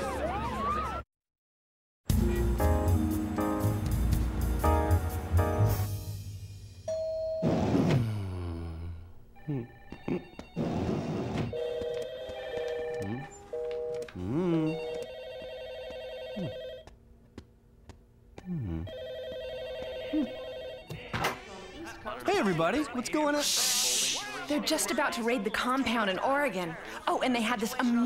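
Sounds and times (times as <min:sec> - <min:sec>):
office telephones ringing: 0:11.5 - 0:14.2, 0:14.8 - 0:16.8, 0:18.9 - 0:21.2.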